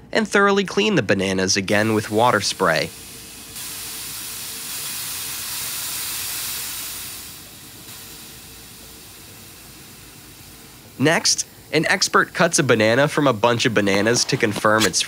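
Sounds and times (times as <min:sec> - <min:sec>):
faint steady hum: 0:00.0 - 0:15.0
water spray hissing from nozzle: 0:01.8 - 0:15.0.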